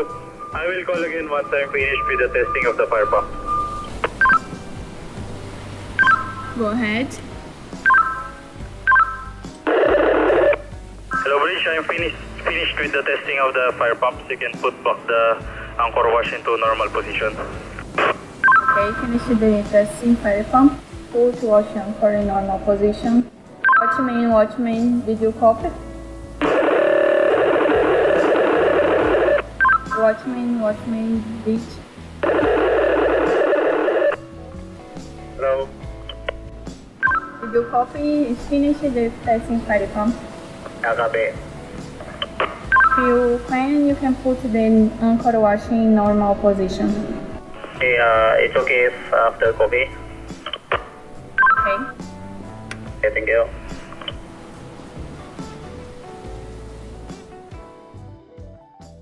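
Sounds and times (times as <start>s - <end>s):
marine radio two-tone beep: 0.0s - 4.6s, 6.0s - 6.6s, 7.8s - 11.4s, 17.9s - 19.0s, 23.6s - 24.1s, 26.4s - 30.2s, 37.0s - 37.7s, 42.1s - 43.2s, 51.4s - 52.0s
radio static hiss: 0.0s - 4.6s, 7.9s - 19.4s, 26.4s - 30.2s, 32.2s - 34.3s, 35.4s - 35.7s, 40.6s - 41.4s, 42.0s - 43.6s, 47.0s - 52.0s, 53.0s - 54.2s.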